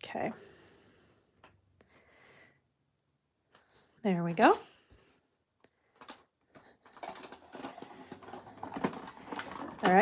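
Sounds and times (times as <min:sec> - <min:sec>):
small irregular taps and rustles: 0:05.4 - 0:10.0.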